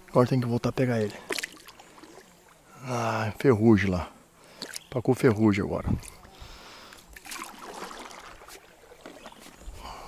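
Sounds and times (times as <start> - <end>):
water lapping around kayak hull: 0.0 - 3.5, 4.3 - 5.0, 5.8 - 10.0
light splashes: 1.0 - 2.6, 6.9 - 9.6.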